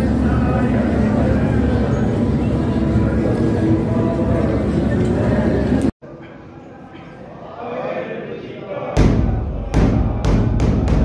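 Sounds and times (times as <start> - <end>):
murmur of voices: 0.0 - 11.0
deep kettle drum strikes: 9.0 - 11.0.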